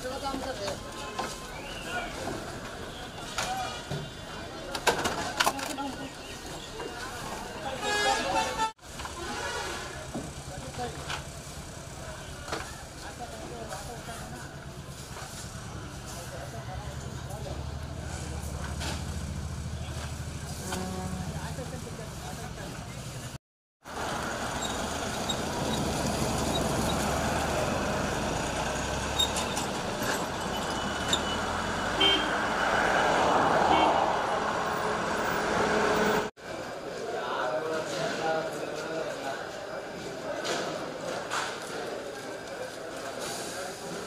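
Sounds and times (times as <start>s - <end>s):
vehicles: 0.0s - 44.0s
short horn toot: 20.5s - 21.6s
hubbub of voices: 36.4s - 44.0s.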